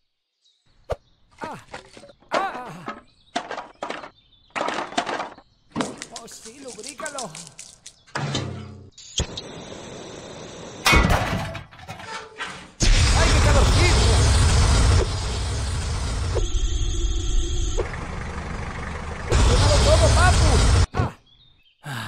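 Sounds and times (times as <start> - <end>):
blowtorch hissing: 9.2 - 10.8, 12.8 - 16.4
loud blast: 12.8 - 17.2, 19.3 - 20.9
rushing fire and explosion noise: 12.8 - 17.9, 19.3 - 20.9.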